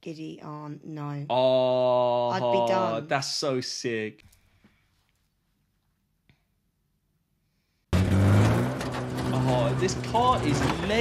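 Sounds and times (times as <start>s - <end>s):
car engine running: 8.0s - 11.0s.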